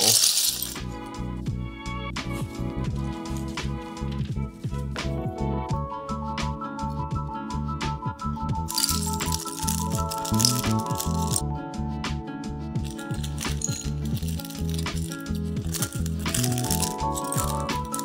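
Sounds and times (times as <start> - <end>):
plastic bricks rattling and clattering: 0.0 - 0.9, 8.7 - 11.4, 12.8 - 18.0
background music: 0.0 - 18.0.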